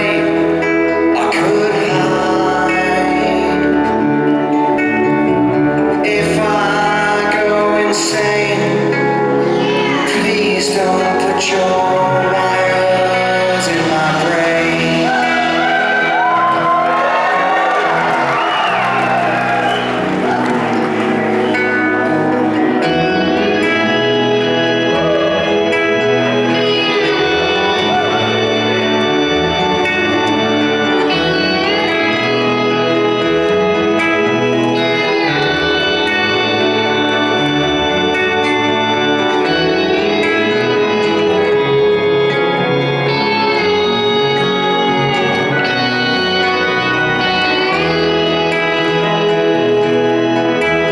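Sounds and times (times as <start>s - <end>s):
electric guitar: 0.0s - 50.9s
live rock band playing ballad: 0.0s - 50.9s
organ-like keyboard chords: 0.0s - 50.9s.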